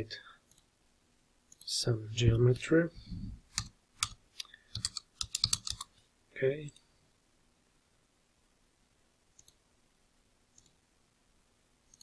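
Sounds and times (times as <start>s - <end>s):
computer mouse clicks: 3.5s - 5.9s, 9.4s - 9.6s, 10.5s - 10.8s.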